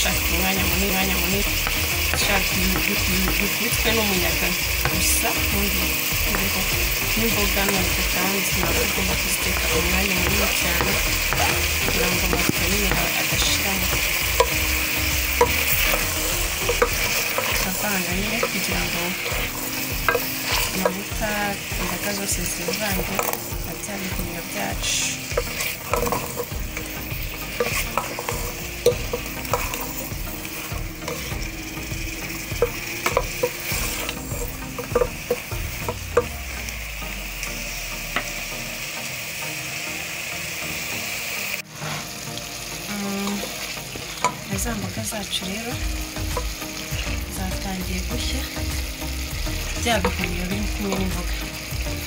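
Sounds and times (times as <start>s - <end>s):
vegetables sizzling in a pot: 0.0s - 52.0s
wooden spoon scraping a pot: 6.1s - 31.6s, 32.4s - 36.3s.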